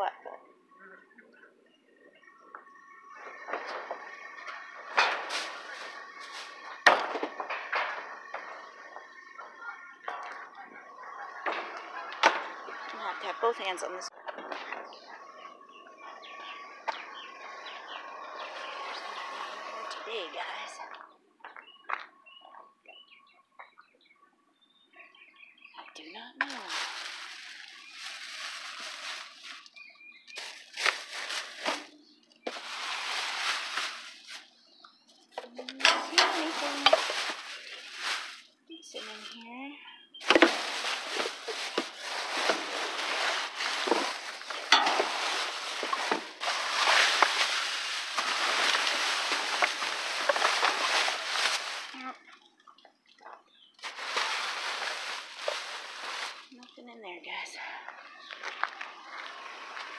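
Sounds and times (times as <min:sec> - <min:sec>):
plastic bags crinkling: 0:04.6 - 0:08.5, 0:26.4 - 0:34.5, 0:35.4 - 0:39.4, 0:40.2 - 0:52.2, 0:53.8 - 0:56.6.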